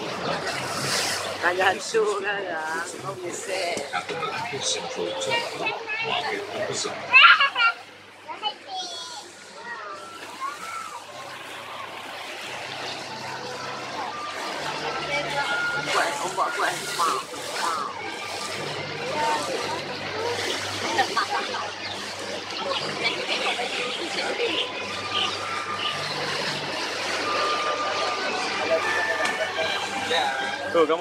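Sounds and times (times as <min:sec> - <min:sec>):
boat engine humming: 0:00.0 - 0:31.0
water rushing along hull: 0:00.0 - 0:31.0
passengers chattering faintly: 0:09.3 - 0:31.0.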